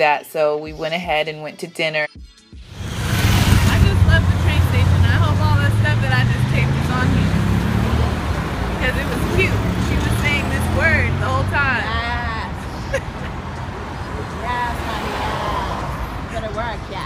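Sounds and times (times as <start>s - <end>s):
passing vehicles engine drone: 2.6s - 17.0s
voices talking: 3.5s - 17.0s.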